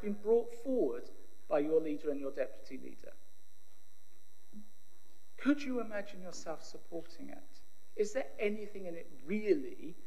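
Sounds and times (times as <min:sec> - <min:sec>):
electrical hum: 0:00.0 - 0:10.0
high-pitched whine from sound system: 0:00.0 - 0:10.0.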